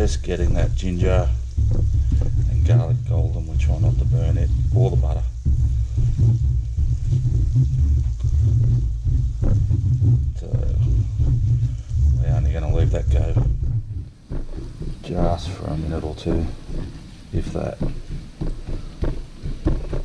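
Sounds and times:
strong low rumble: 0:00.0 - 0:20.0.

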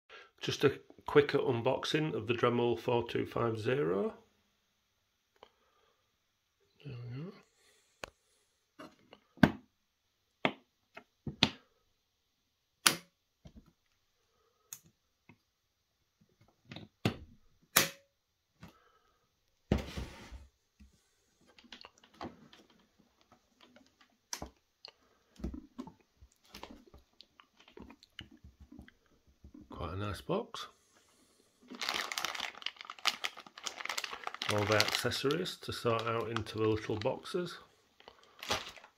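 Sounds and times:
rubbing and handling noise: 0:19.7 - 0:24.6.

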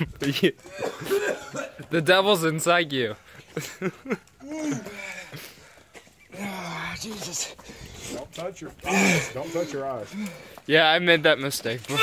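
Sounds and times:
person coughing: 0:00.7 - 0:01.8.

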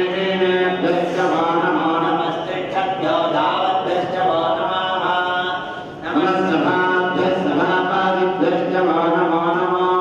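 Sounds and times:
voices chanting mantras: 0:00.0 - 0:10.0.

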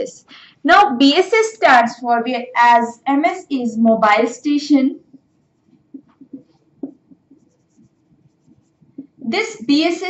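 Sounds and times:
marker squeaking on whiteboard: 0:05.0 - 0:09.2.

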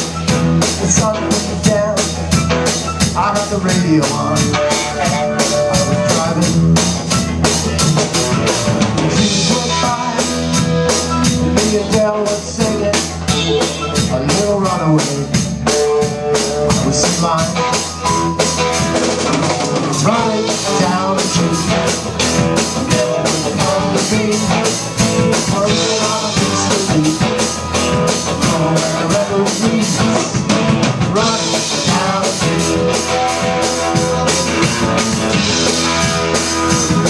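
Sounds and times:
drum kit beat: 0:00.0 - 0:37.0
electric guitar: 0:00.0 - 0:37.0.

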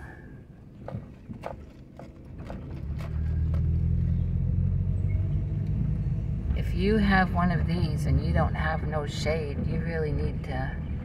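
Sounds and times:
car driving slowly rumble: 0:00.0 - 0:11.0.

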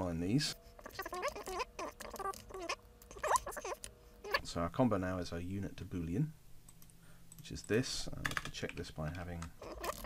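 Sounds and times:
high squeaky chirping tones: 0:00.8 - 0:04.5.

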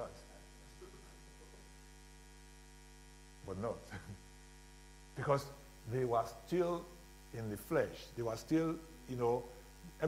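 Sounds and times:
electrical mains hum: 0:00.0 - 0:10.0
person speaking: 0:05.2 - 0:10.0.

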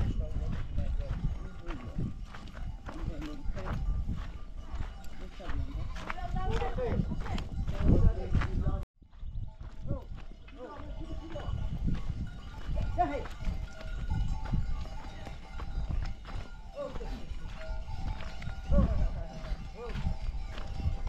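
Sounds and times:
hooves on stony ground: 0:00.0 - 0:21.0.

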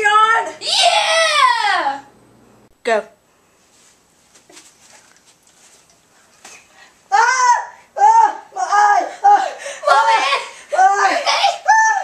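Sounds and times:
people rustling and shuffling: 0:03.4 - 0:07.1.

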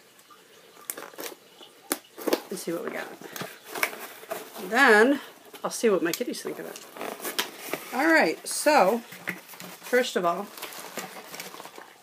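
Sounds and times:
cardboard rustling: 0:02.2 - 0:12.0.

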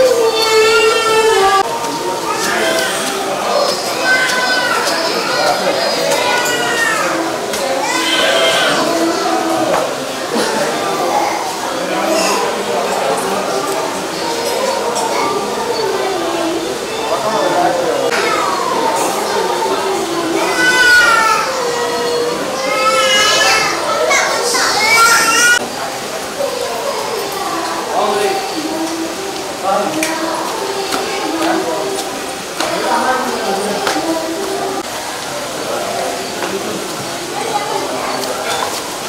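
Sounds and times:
children's voices: 0:00.0 - 0:39.0
crowd chatter: 0:00.0 - 0:39.0
murmur of voices: 0:00.0 - 0:39.0.

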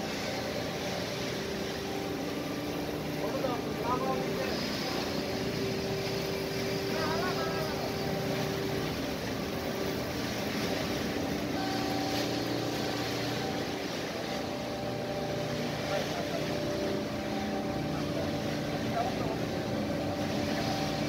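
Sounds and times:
deck crane hoisting: 0:00.0 - 0:21.0
shipboard machinery drone: 0:00.0 - 0:21.0
steady tones: 0:00.0 - 0:21.0.

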